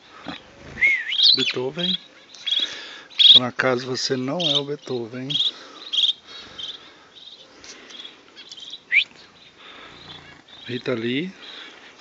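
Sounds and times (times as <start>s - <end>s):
small birds chirping trills: 0.0s - 12.0s
loud rising bird call: 0.3s - 1.6s, 8.4s - 10.8s.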